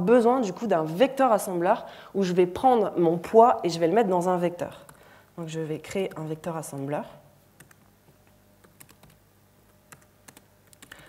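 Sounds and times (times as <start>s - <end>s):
keyboard typing: 7.6s - 7.8s, 8.6s - 9.2s, 9.9s - 11.0s.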